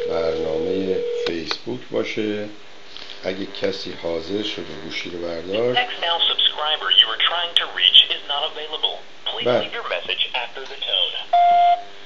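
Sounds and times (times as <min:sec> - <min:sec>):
recorded voice over phone speaker: 0:03.4 - 0:11.3
answering machine beep: 0:11.3 - 0:11.9.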